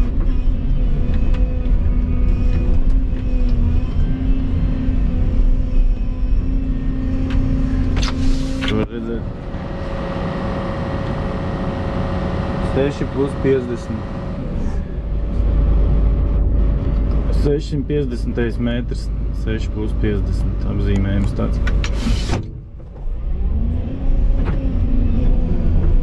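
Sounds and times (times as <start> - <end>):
excavator diesel engine rumbling: 0.0 - 26.0.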